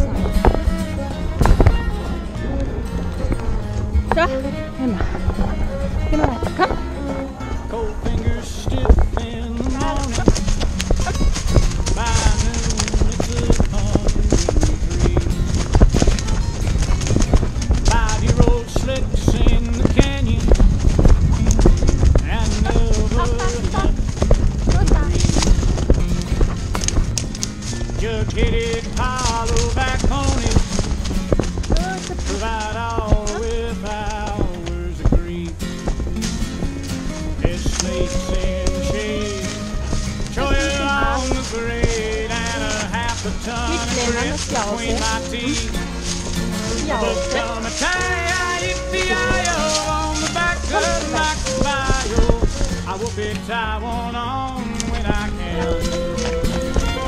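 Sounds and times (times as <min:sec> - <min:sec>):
background music with singing: 0:00.0 - 0:11.1, 0:27.9 - 0:57.0
horse hooves clip-clopping on dirt: 0:00.0 - 0:57.0.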